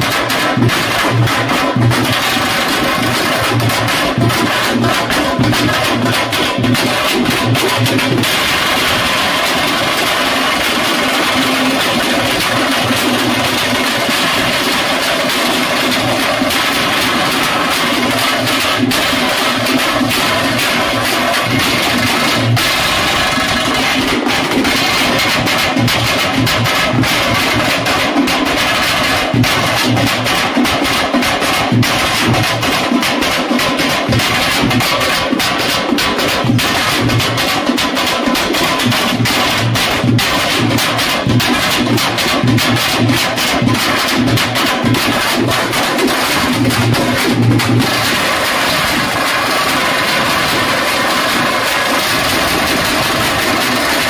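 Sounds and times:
large drum beaten with stick: 0:00.0 - 0:54.0.

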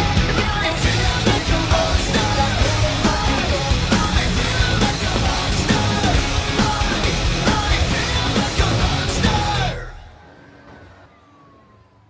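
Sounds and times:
thin tone sliding downward: 0:00.7 - 0:12.0.

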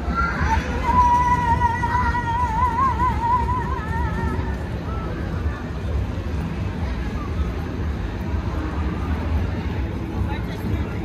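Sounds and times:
city ambience rumble: 0:00.0 - 0:11.0.

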